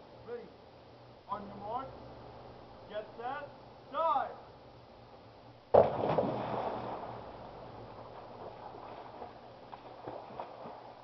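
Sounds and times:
loud splash into pool: 5.7s - 7.2s
water washing and settling: 5.8s - 11.0s.

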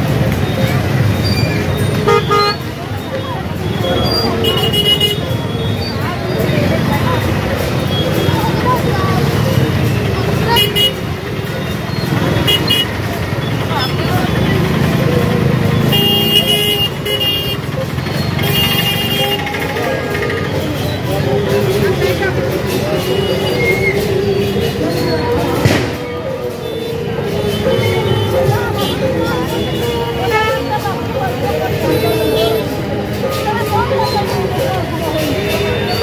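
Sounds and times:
crowd voices chattering: 0.0s - 36.0s
motorcycle and scooter engines: 0.0s - 36.0s
vehicle horn beeps: 2.0s - 2.7s, 15.8s - 17.6s.

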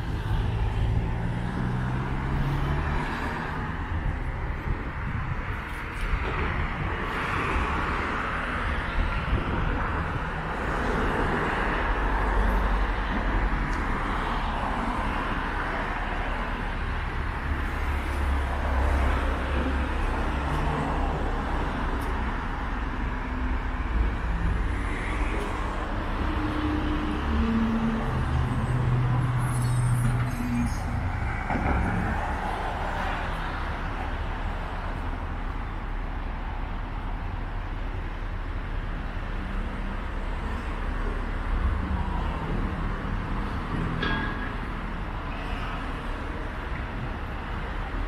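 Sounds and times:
cars driving on road: 0.0s - 48.0s.

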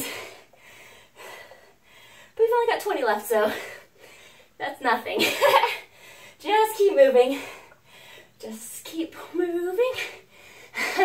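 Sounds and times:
woman breathing hard: 0.0s - 2.4s, 5.8s - 6.4s, 7.4s - 8.4s.

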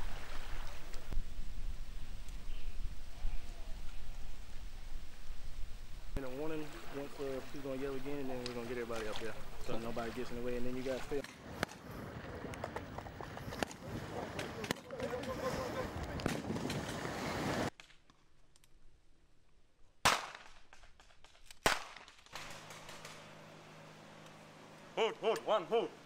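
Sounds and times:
outdoor noise: 0.0s - 26.0s
voices: 6.2s - 11.3s, 11.9s - 16.3s, 24.9s - 26.0s.

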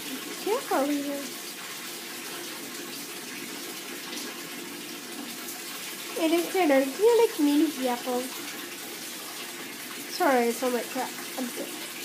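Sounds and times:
bath tap filling tub: 0.0s - 12.0s.

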